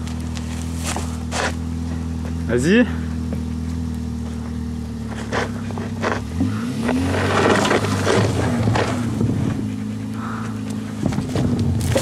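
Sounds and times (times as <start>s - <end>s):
snow crunching under a sled: 0.0s - 1.6s, 5.1s - 12.0s
engine revving: 0.0s - 12.0s.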